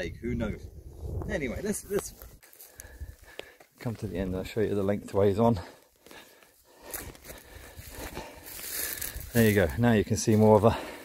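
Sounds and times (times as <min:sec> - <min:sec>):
footsteps through grass and heather: 0:01.7 - 0:04.7, 0:05.5 - 0:11.0.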